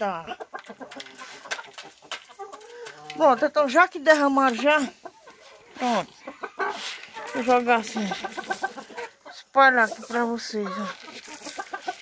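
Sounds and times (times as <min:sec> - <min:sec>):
chickens clucking softly: 0:00.0 - 0:03.5, 0:04.7 - 0:12.0
chickens pecking grain: 0:00.0 - 0:12.0.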